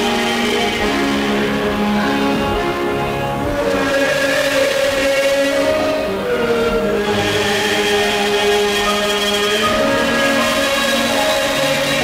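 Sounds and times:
man and woman singing a hymn: 0.0s - 12.0s.

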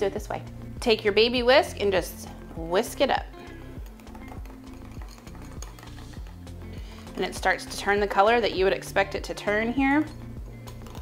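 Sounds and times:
background music: 0.0s - 11.0s
whisk stirring in a bowl: 3.8s - 8.2s.

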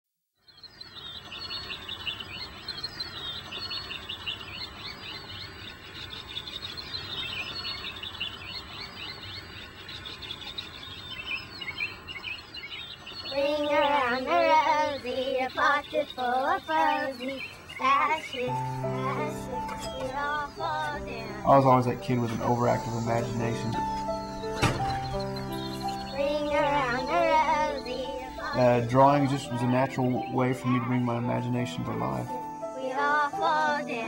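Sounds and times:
songbirds chirping: 0.4s - 34.0s
person singing: 18.4s - 24.0s, 26.1s - 34.0s.

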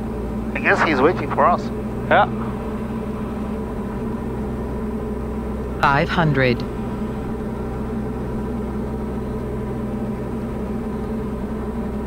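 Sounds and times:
aircraft engine and propeller drone: 0.0s - 12.0s.

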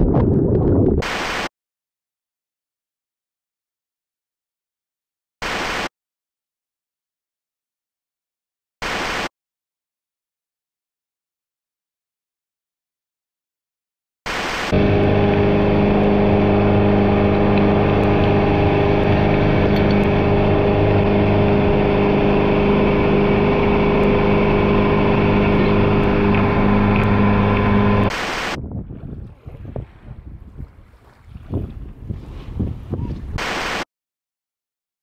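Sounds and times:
outboard motor running: 14.3s - 32.9s
boat wake rushing: 14.3s - 33.8s
wind: 14.3s - 33.8s.

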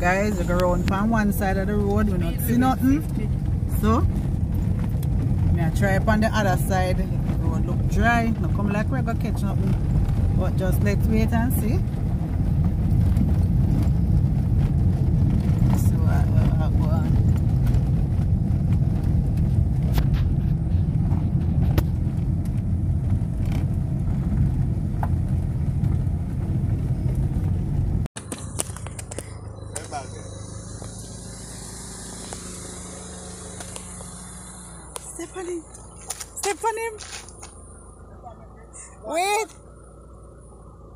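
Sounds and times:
loud low rumble: 0.0s - 40.9s
night insects chirring: 28.3s - 38.2s.

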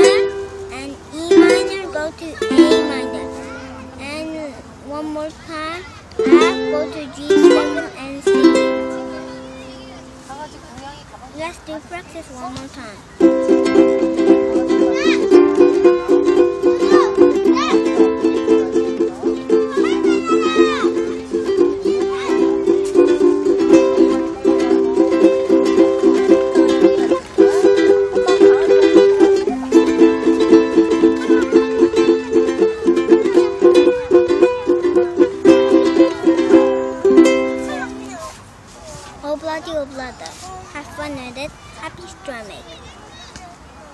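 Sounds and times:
ukulele strumming chords: 0.0s - 10.5s, 12.2s - 38.4s.

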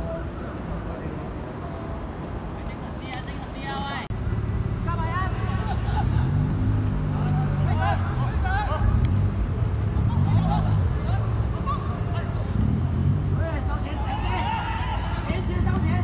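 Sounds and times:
distant players shouting: 13.2s - 16.0s.

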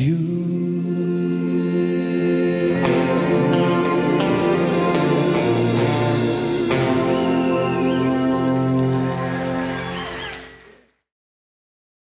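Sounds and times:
band and singers holding chord: 0.0s - 10.8s.

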